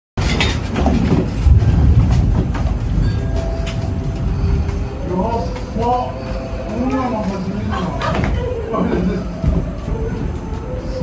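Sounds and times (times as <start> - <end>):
room fittings rattling: 0.2 - 10.7
deep earthquake rumble: 0.2 - 11.0.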